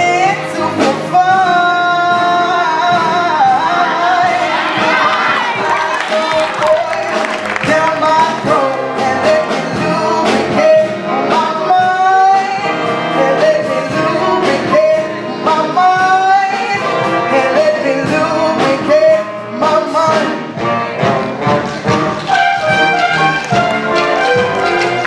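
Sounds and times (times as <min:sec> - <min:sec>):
instrumental accompaniment: 0:00.0 - 0:25.0.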